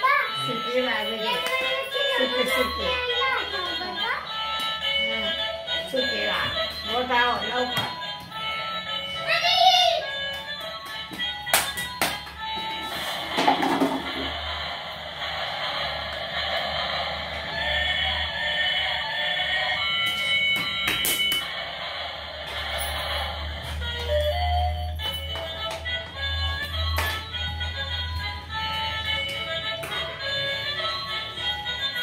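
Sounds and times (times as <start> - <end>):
tinny electronic toy tune: 0.2 - 14.5, 22.7 - 32.0.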